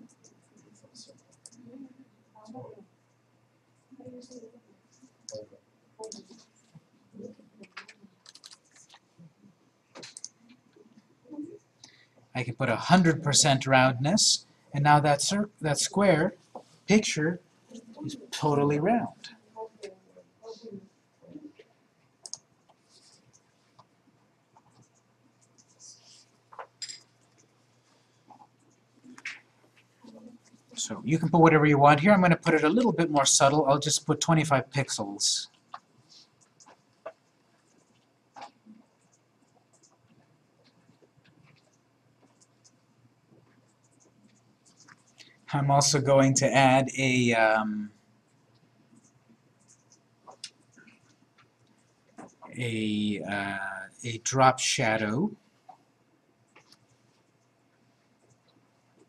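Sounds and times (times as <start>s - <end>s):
low steady hum: 0.0s - 59.0s
computer clicks: 6.0s - 6.5s, 7.6s - 9.0s, 9.9s - 10.4s, 22.2s - 22.5s.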